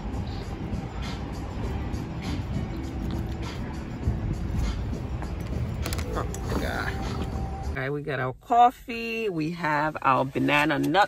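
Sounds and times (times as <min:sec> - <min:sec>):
background music: 0:00.0 - 0:07.8
city street traffic rumble: 0:00.0 - 0:07.8.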